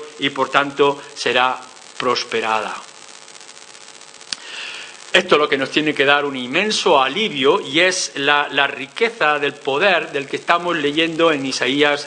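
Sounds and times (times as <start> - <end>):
low room hiss: 0.0 - 12.0
man inhaling: 4.3 - 5.1.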